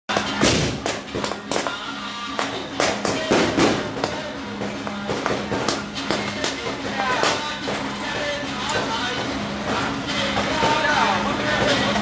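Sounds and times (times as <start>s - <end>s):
firecrackers banging: 0.1s - 12.0s.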